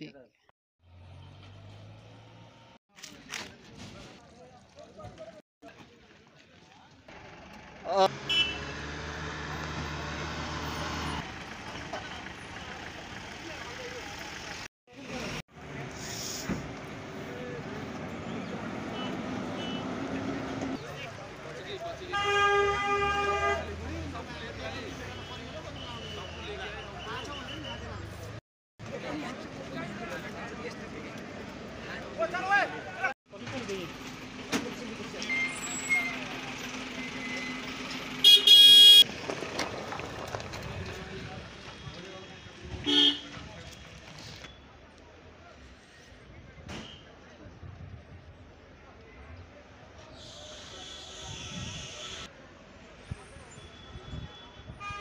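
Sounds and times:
vehicle horn blast: 8.2 - 8.7, 22.1 - 23.7, 38.2 - 39.0, 42.8 - 43.3, 53.8 - 55.0
vehicle engines running on gravel: 10.9 - 21.9, 39.0 - 45.0.

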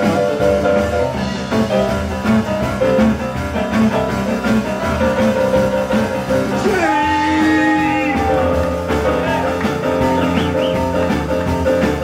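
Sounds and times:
live rock and roll band: 0.0 - 12.0
stage piano: 0.0 - 12.0.

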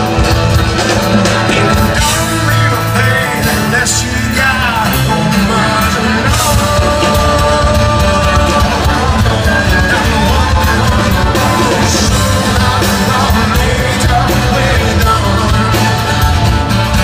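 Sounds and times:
drums: 0.0 - 17.0
electric guitar: 0.0 - 17.0
strummed acoustic guitar: 0.0 - 17.0.

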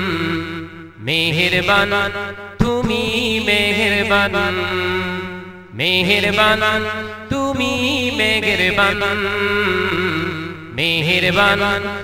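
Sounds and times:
man singing devotional song: 0.0 - 12.0.

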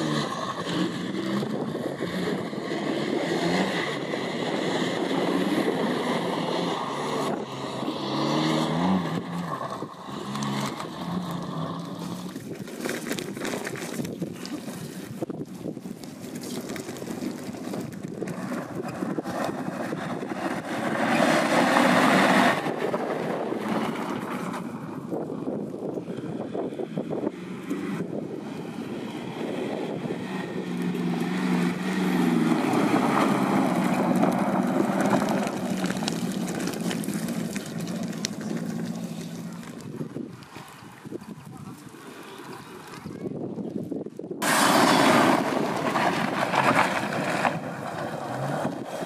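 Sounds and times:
engine working under load: 0.0 - 49.0.

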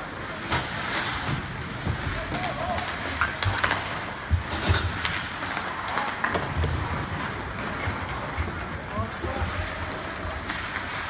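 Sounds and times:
skates scraping on ice: 0.0 - 11.0
stick and puck clacks: 0.3 - 11.0.

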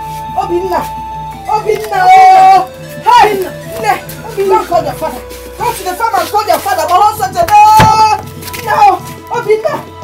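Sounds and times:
background music score: 0.0 - 10.0.

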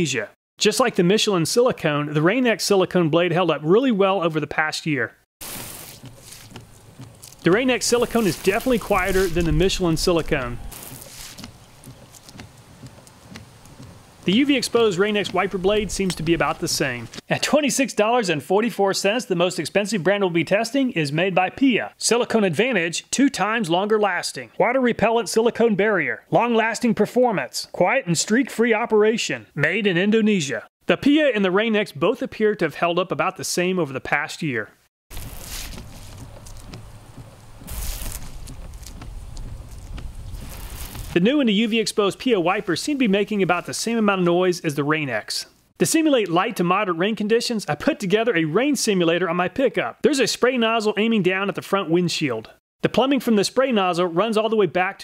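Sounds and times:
wiper blades swishing on glass: 5.4 - 9.7, 10.6 - 15.5
wiper blade sweeping wet windshield: 35.1 - 41.2.

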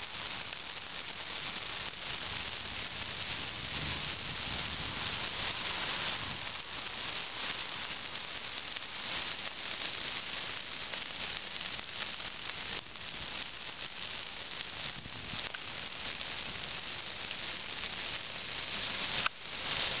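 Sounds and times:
fire hissing and crackling: 0.0 - 20.0.

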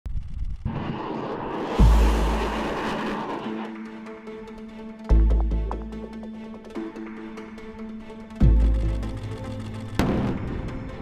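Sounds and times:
rocket launch roar: 0.6 - 4.2
background music: 1.8 - 11.0.

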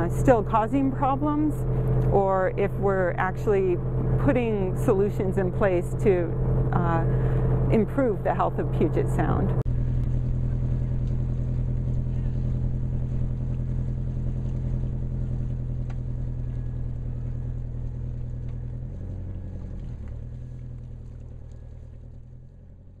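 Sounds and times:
boat engine droning: 0.0 - 23.0.

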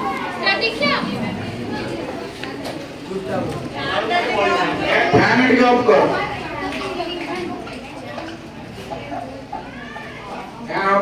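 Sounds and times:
indistinct chatter of voices: 0.0 - 11.0.

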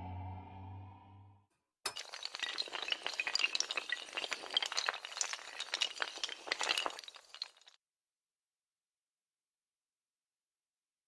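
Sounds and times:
dominoes toppling clatter: 1.9 - 7.8.

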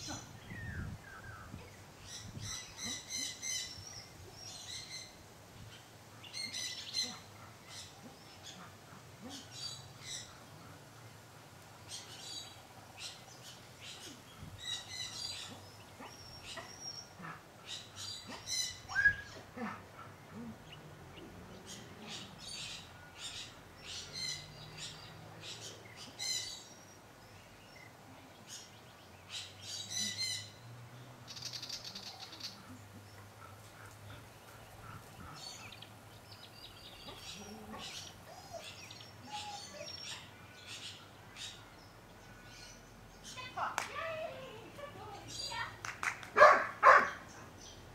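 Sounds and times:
small birds chirping: 0.0 - 47.9.

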